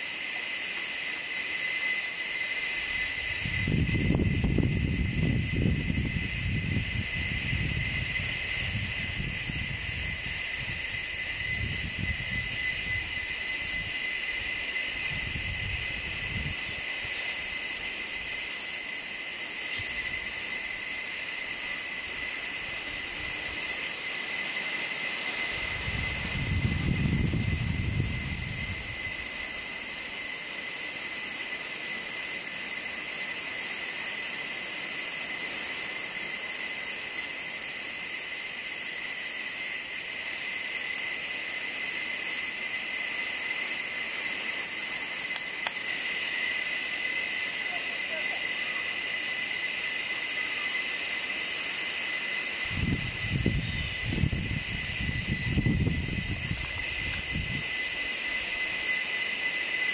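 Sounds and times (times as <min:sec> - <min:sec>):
insect chorus hissing: 0:00.0 - 0:59.9
pulsed insect trill: 0:00.0 - 0:59.9
thin whine: 0:00.0 - 0:59.9.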